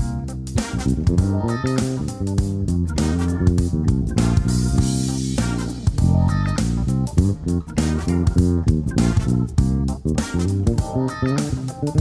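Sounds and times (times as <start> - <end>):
electric bass plucked notes: 0.0 - 12.0.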